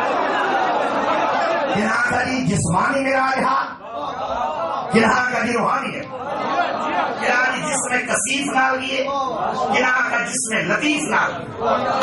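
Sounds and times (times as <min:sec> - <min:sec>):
man speaking over a microphone: 0:01.7 - 0:03.9, 0:04.9 - 0:06.2, 0:07.2 - 0:11.7.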